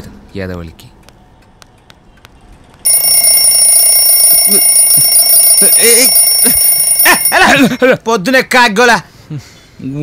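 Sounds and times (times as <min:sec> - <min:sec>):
high-pitched electronic alarm: 0:02.9 - 0:07.6.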